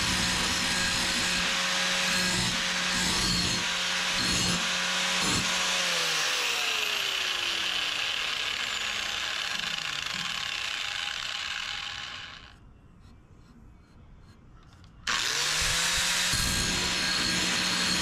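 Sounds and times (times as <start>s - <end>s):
angle grinder grinding steel: 0.0s - 12.6s, 15.1s - 18.0s
grinder spinning down whine: 0.0s - 12.6s, 15.1s - 18.0s.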